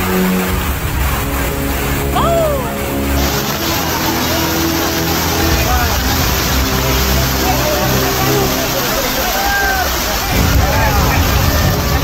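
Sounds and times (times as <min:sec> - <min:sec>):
floodwater rushing: 0:00.0 - 0:12.0
people calling out: 0:02.1 - 0:03.0.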